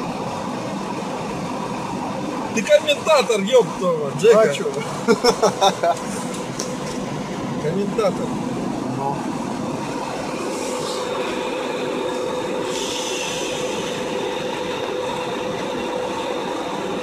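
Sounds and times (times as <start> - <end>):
road noise inside vehicle: 0.0 - 17.0
brief hiss: 12.6 - 13.9.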